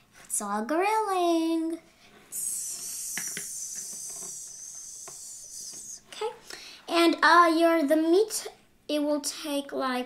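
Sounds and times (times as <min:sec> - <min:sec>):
high hissing sizzle: 0:02.3 - 0:06.1.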